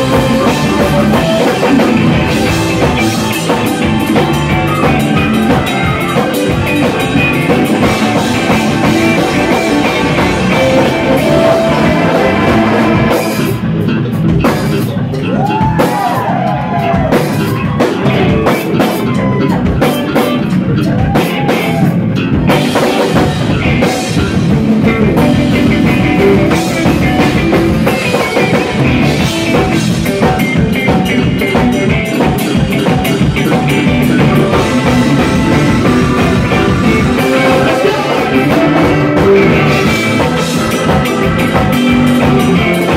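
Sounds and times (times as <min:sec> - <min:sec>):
lead guitar line bending in pitch: 0:00.0 - 0:14.4, 0:22.2 - 0:42.9
live rock band playing: 0:00.0 - 0:42.9.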